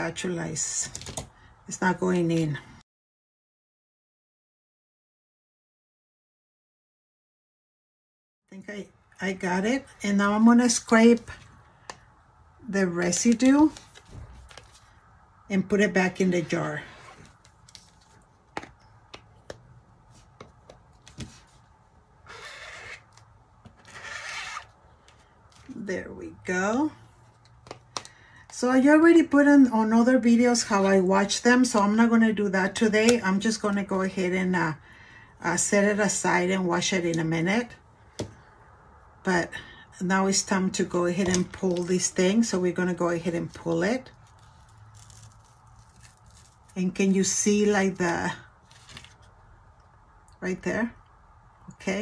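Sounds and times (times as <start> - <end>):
squeegee scraping across mesh screen: 23.8 - 25.7
stencil peeling off crackling: 44.1 - 46.8.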